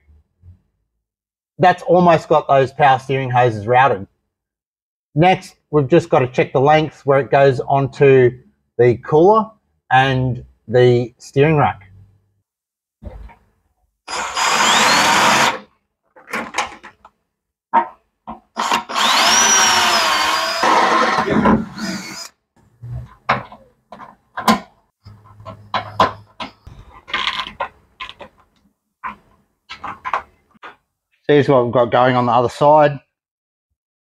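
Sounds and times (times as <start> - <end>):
cordless drill drilling into metal: 14.1 - 15.7, 18.6 - 22.3.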